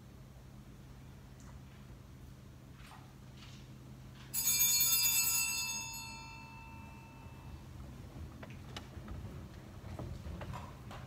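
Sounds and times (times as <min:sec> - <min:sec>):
small bell ringing: 0:04.3 - 0:07.7.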